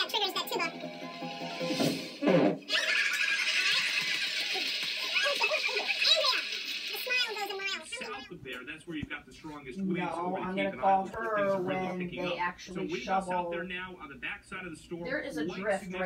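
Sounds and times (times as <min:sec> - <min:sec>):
voices on television: 0:00.0 - 0:16.0.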